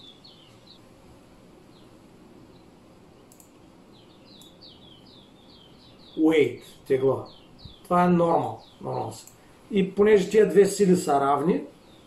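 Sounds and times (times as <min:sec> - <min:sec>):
small bird chirping: 0:00.0 - 0:00.9, 0:01.5 - 0:12.0.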